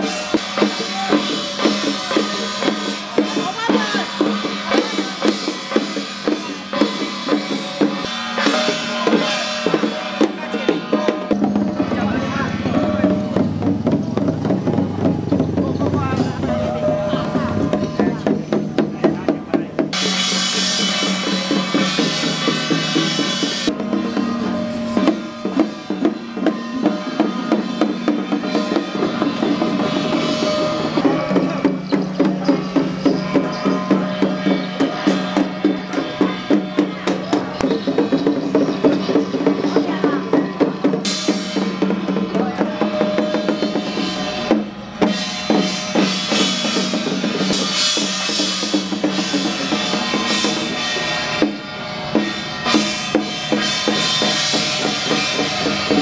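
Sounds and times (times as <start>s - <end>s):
drums beating quick rhythm: 0.0s - 56.0s.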